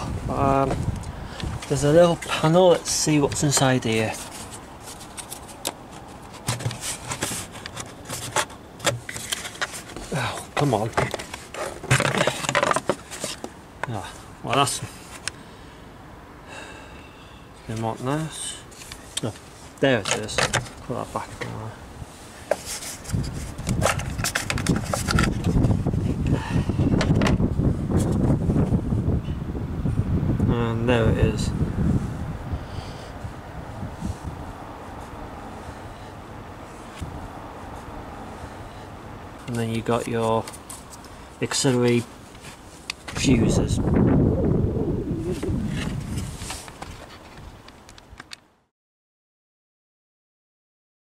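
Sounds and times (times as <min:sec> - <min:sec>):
plastic clicks and scrapes: 0:04.2 - 0:10.1, 0:10.9 - 0:13.5, 0:22.5 - 0:25.7
low rumble: 0:43.7 - 0:46.4.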